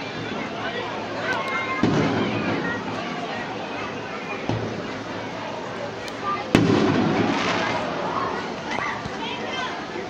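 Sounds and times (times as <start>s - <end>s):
people talking: 0.0s - 10.0s
firework boom: 6.5s - 8.5s.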